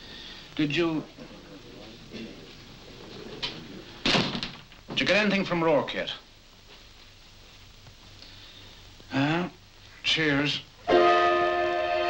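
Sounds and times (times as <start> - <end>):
door slamming shut: 4.0 - 4.7.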